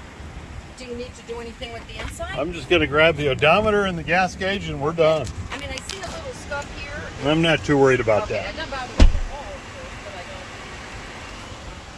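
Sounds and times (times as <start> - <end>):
heavy thump: 8.9 - 9.4.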